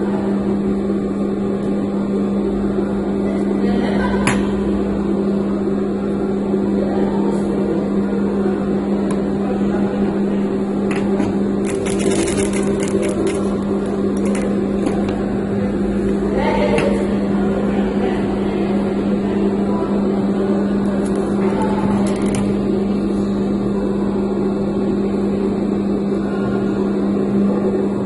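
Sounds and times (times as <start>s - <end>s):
sewing machine motor hum: 10.9s - 17.4s, 20.8s - 22.8s.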